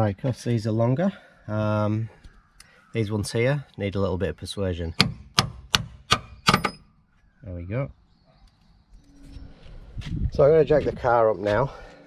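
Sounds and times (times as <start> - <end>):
hammer striking steel bolt: 5.0 - 6.8.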